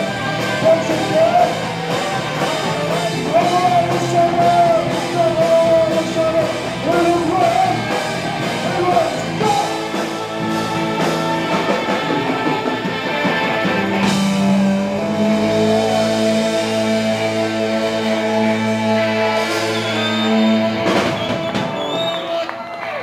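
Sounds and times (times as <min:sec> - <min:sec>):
live rock band playing: 0:00.0 - 0:22.5.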